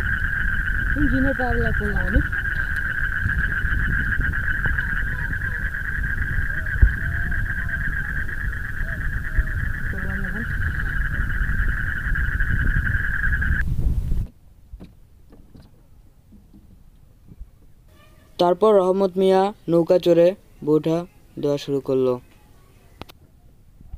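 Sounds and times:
insects droning: 0.0s - 13.6s
low rumble: 0.0s - 14.3s.

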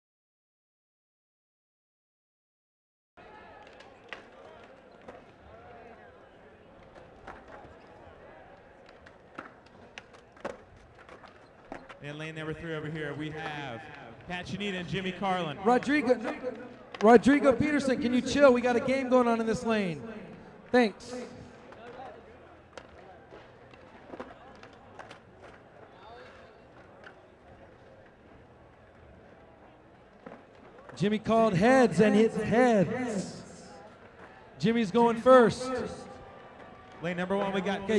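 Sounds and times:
crowd chatter: 3.2s - 37.9s
skateboards clacking: 6.6s - 12.3s, 21.6s - 31.1s
skateboards clacking on hard floor: 8.8s - 12.1s.

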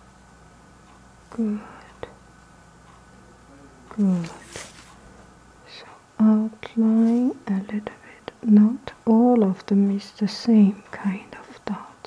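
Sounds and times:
person talking: 1.3s - 2.1s, 3.3s - 4.8s, 5.7s - 12.0s.

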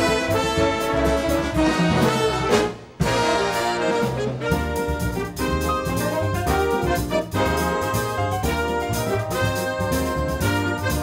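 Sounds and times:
big band playing jazz: 0.0s - 11.0s.

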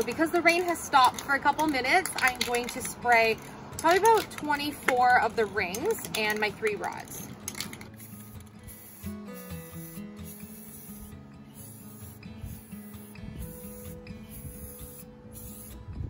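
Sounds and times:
aerosol spray can hissing: 7.8s - 15.9s.

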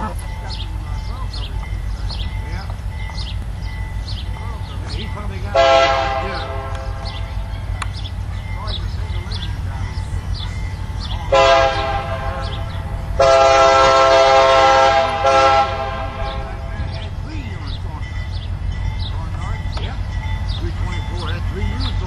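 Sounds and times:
diesel locomotive engine rumbling: 0.0s - 22.0s
locomotive horn blasts: 4.9s - 7.6s, 11.2s - 17.1s.

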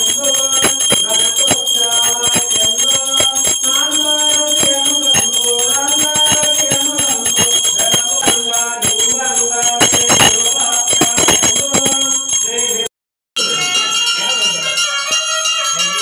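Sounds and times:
hand bell ringing: 0.0s - 16.0s.

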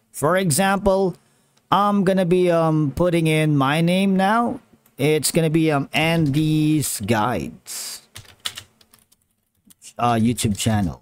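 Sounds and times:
keyboard typing: 8.1s - 10.3s.

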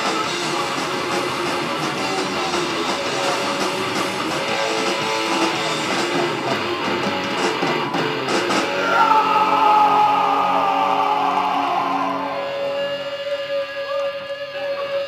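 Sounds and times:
bass: 0.0s - 15.0s
distorted electric guitars: 0.0s - 15.0s
drums: 0.0s - 15.0s.

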